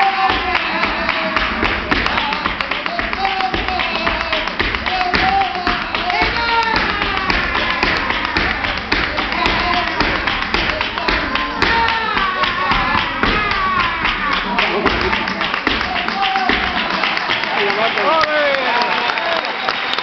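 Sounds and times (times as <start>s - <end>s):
dancer's heel and toe taps: 0.0s - 18.2s
sharp handclaps: 0.0s - 20.0s.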